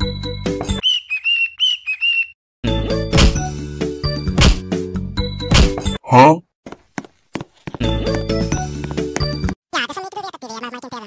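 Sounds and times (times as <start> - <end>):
whistled tune: 0.8 - 2.4.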